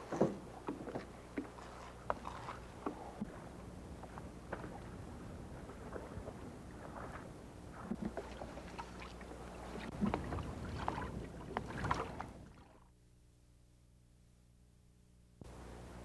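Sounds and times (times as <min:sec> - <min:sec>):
steady low rumble: 0:02.0 - 0:13.4.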